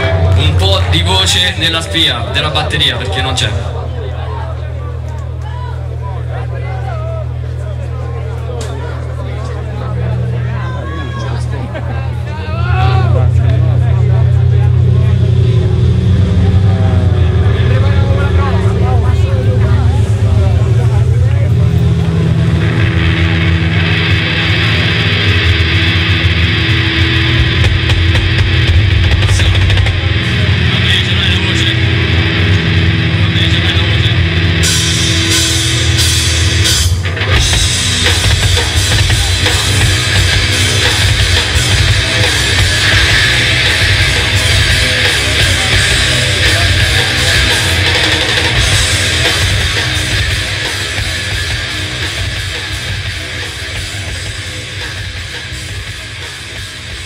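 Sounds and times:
bass and drums: 0.0s - 57.0s
distorted guitars: 0.0s - 57.0s
nu-metal band playing live: 0.0s - 57.0s.

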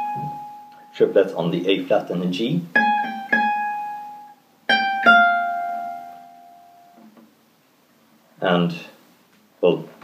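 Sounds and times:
acoustic guitar note ringing: 0.0s - 2.0s, 2.7s - 7.2s.

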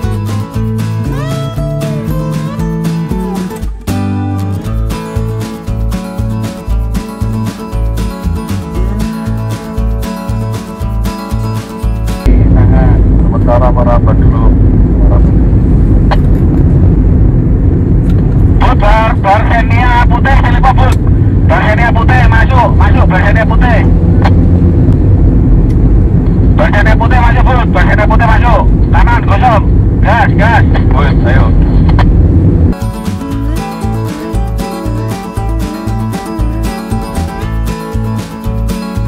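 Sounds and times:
acoustic guitar music: 0.0s - 12.4s, 31.6s - 39.0s
car road and engine rumble: 0.0s - 39.0s.

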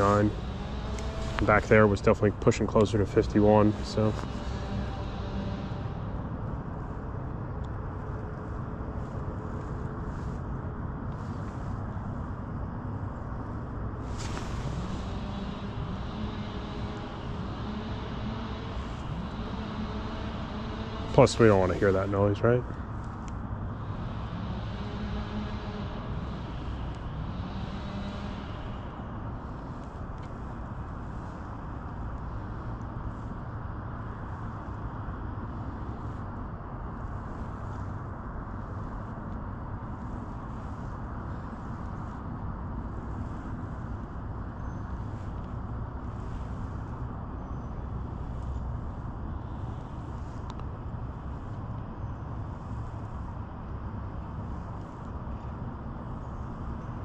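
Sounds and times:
electric pedal drive humming: 0.0s - 8.4s, 14.0s - 33.1s.

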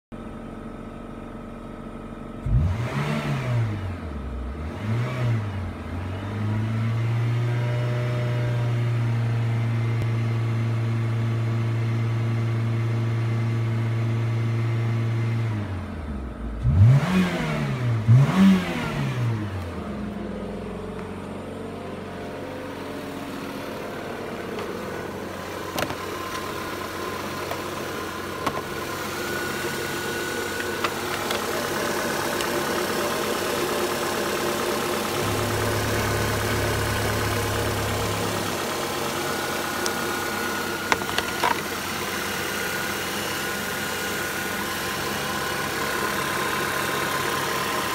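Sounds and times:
car engine revving: 2.4s - 10.0s, 15.5s - 47.9s.

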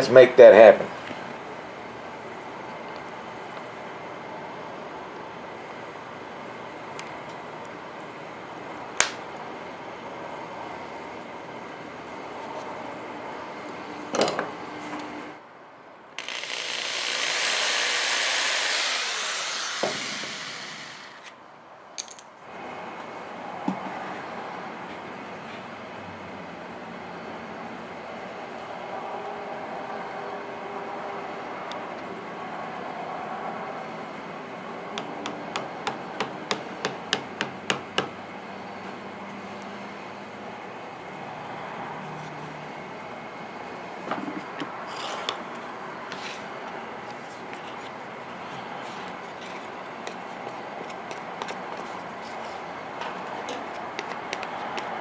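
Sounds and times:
cordless drill drilling into wood: 16.2s - 21.3s.

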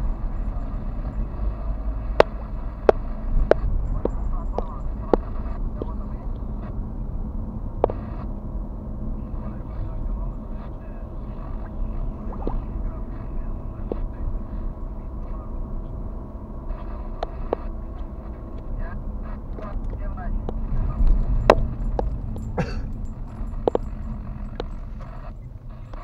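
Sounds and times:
car engine and tyre rumble: 0.0s - 26.0s.

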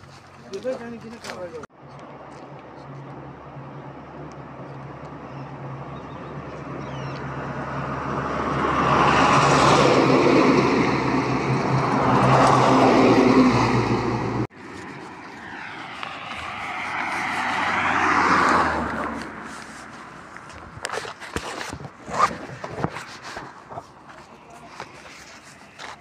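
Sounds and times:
vehicle approaching: 0.0s - 26.0s.

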